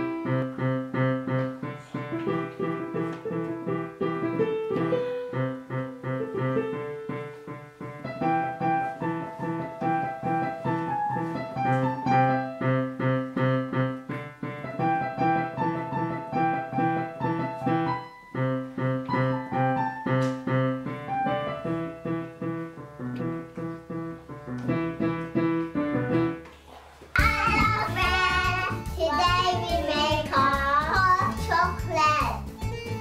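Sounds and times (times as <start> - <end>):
piano melody: 0.0 - 33.0
background music: 27.2 - 33.0
child singing: 27.2 - 33.0.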